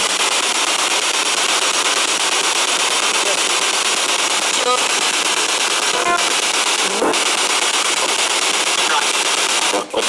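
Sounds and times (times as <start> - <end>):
loud radio static: 0.0 - 10.0
short snatches of radio sound: 5.9 - 7.4, 8.8 - 10.0.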